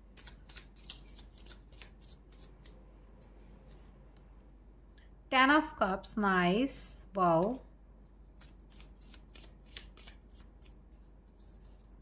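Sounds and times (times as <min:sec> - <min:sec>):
cards clicking and rustling: 0:00.2 - 0:02.7, 0:08.4 - 0:10.7.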